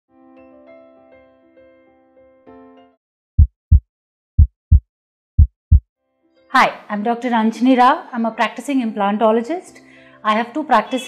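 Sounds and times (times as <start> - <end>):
heartbeat thumps: 3.4 - 3.8, 4.4 - 5.8.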